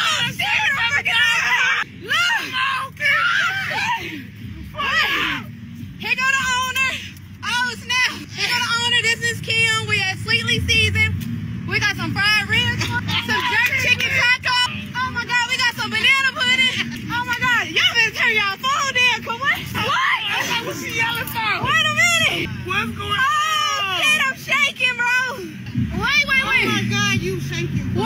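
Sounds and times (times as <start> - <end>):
women shouting and squealing: 0.0 - 11.0, 11.7 - 28.0
steady low rumble: 0.0 - 28.0.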